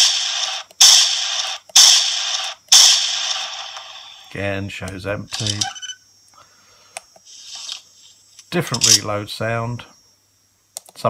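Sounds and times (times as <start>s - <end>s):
rifle reload sound effect: 5.4s - 5.8s, 8.8s - 9.0s
click: 10.8s - 11.0s.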